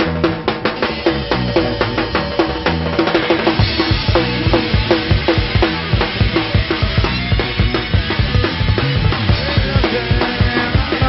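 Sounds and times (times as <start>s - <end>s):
pop-punk band playing live: 0.0s - 11.0s
rapid kick-drum beats: 0.0s - 11.0s.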